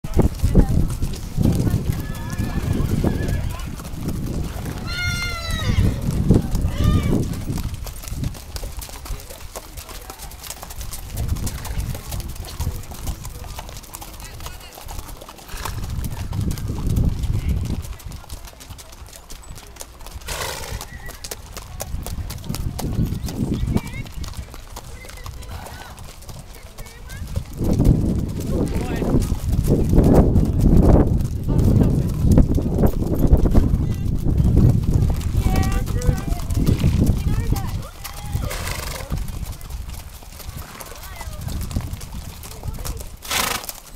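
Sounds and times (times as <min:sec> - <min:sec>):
hooves clopping on dirt: 0:00.0 - 0:43.9
riders chatting: 0:00.1 - 0:43.9.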